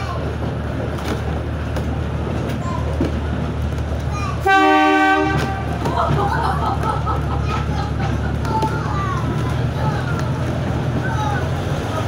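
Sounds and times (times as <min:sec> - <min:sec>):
train wheels on track: 0:00.0 - 0:12.0
locomotive horn toot: 0:04.4 - 0:05.8.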